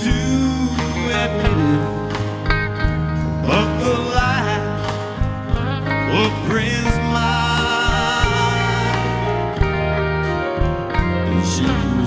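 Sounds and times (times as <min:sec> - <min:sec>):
man singing lead: 0:00.0 - 0:02.5, 0:03.3 - 0:10.0, 0:11.0 - 0:12.0
country band playing: 0:00.0 - 0:12.0
guitar: 0:00.0 - 0:12.0.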